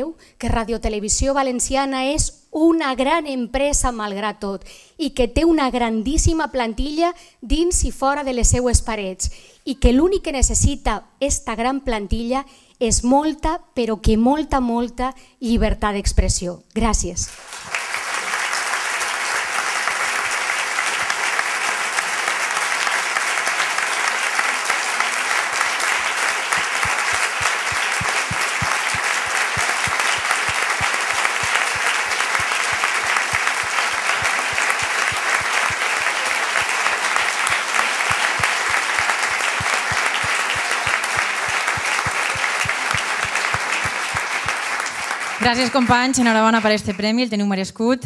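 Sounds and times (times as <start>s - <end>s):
crowd applauding: 17.3s - 47.1s.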